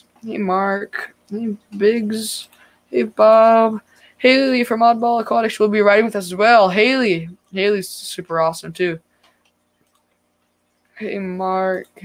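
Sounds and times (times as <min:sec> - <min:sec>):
faint steady hum: 0:00.0 - 0:12.0
faint ticks: 0:09.1 - 0:11.0.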